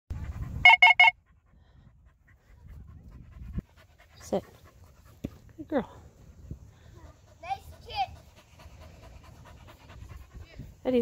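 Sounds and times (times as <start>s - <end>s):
dog panting: 0.1s - 0.6s, 1.2s - 11.0s
quick high beeps: 0.6s - 1.2s.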